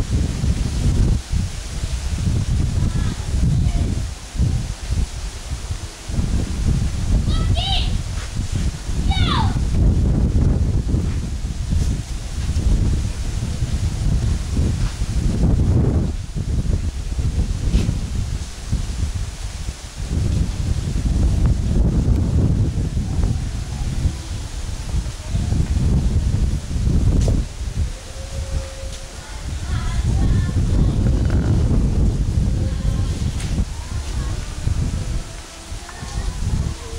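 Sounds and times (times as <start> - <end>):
wind buffeting microphone: 0.0 - 36.9.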